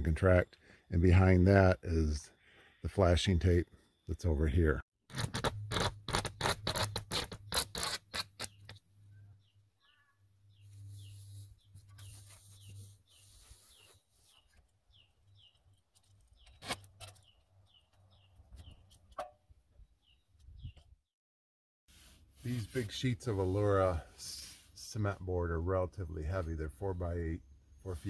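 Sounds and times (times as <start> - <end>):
tape crackling and rasping: 5.1 - 8.8, 15.5 - 17.4.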